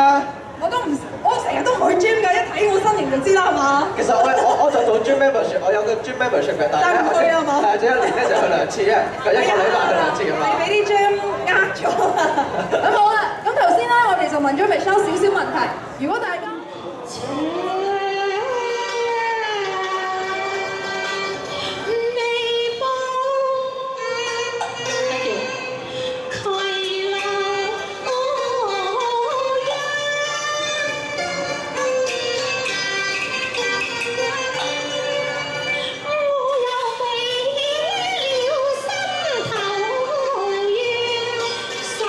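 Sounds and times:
woman singing opera-style melody: 17.2s - 21.2s, 36.0s - 42.0s.

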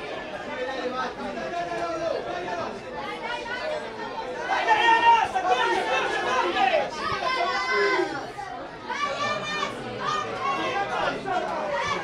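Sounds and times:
spectators and players shouting: 0.0s - 12.0s.

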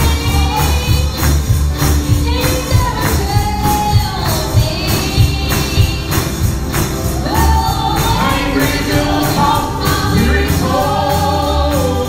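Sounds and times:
band accompaniment with beat: 0.0s - 12.0s
group singing gospel in harmony: 0.0s - 12.0s.

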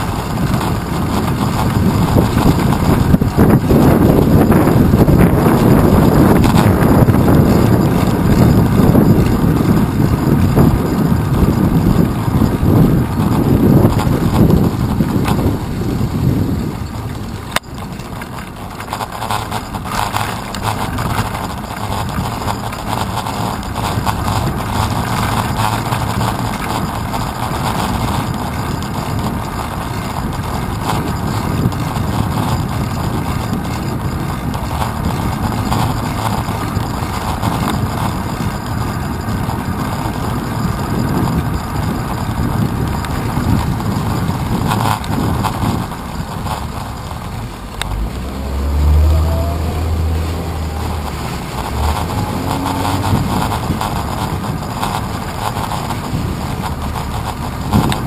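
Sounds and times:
deep vehicle engine rumble: 0.0s - 58.0s
wind noise on microphone: 0.0s - 58.0s.

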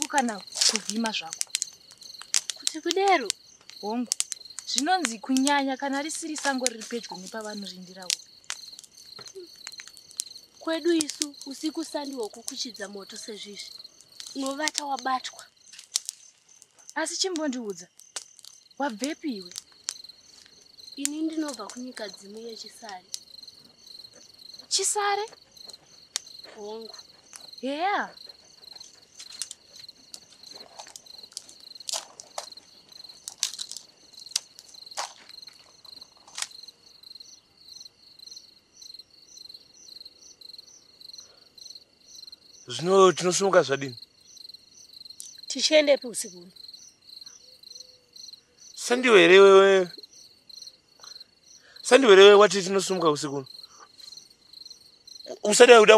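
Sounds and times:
crickets chirping: 0.0s - 55.9s.

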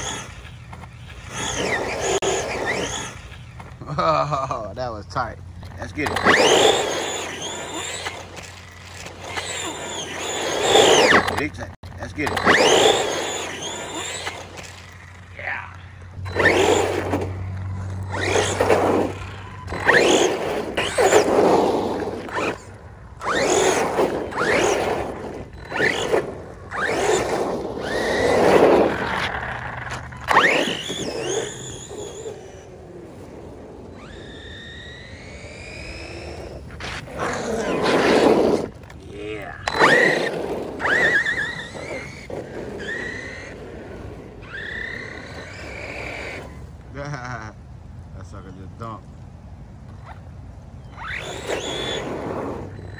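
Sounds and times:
rc truck motor whine: 0.0s - 4.5s, 5.2s - 46.9s, 49.9s - 52.9s.

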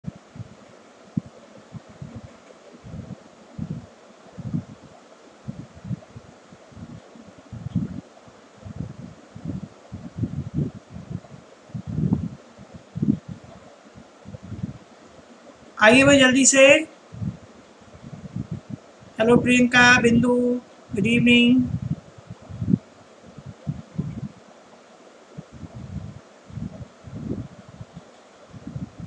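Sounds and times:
faint steady hiss: 0.0s - 29.0s
rustles and bumps on microphone: 0.1s - 15.2s, 17.1s - 19.6s, 21.7s - 24.4s, 25.3s - 29.0s.

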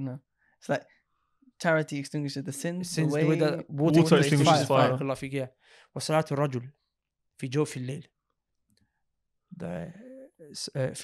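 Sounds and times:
man speaking: 1.6s - 6.7s, 7.4s - 8.1s, 9.6s - 11.0s.

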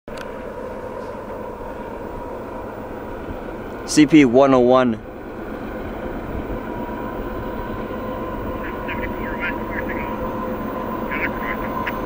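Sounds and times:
distant freight train: 0.1s - 12.0s
faint steady tones: 0.1s - 12.0s.

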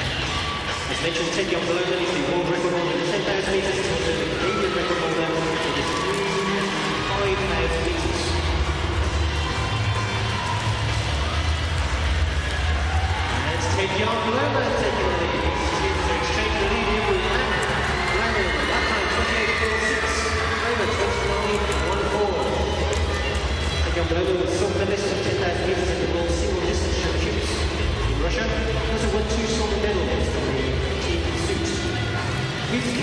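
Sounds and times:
music: 0.0s - 33.0s.

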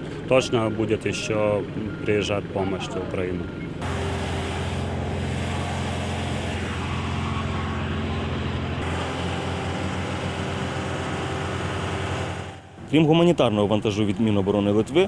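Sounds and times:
engine running with hiss: 3.8s - 12.9s.

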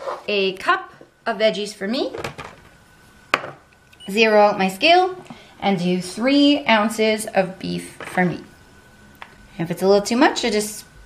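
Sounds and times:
cup knocking on counter: 3.4s - 3.6s.

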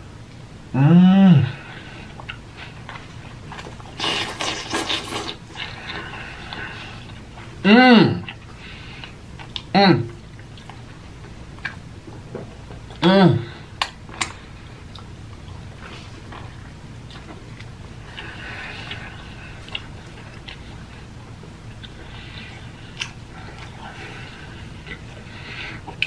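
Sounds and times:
wet squelchy chewing: 2.0s - 7.6s, 13.8s - 26.0s.

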